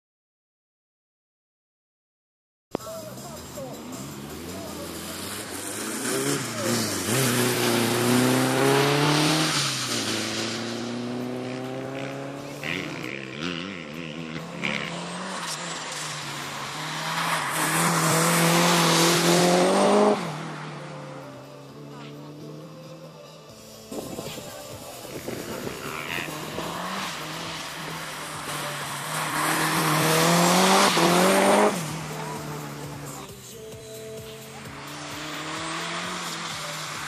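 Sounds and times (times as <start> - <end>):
car engine revving: 2.7 - 22.9, 23.6 - 37.0.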